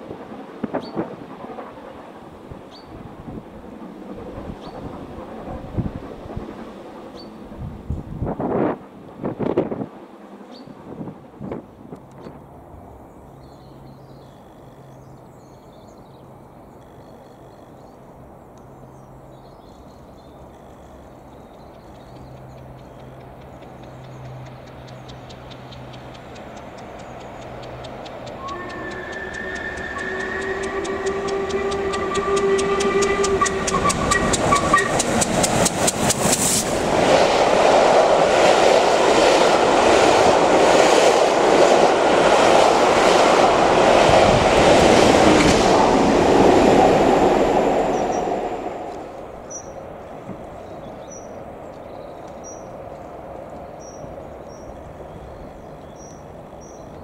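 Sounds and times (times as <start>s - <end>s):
steam locomotive approaching: 0.0s - 13.2s, 20.0s - 57.0s
train wheels clicking over rail joints: 21.9s - 37.7s
steam whistle blast: 28.4s - 35.0s.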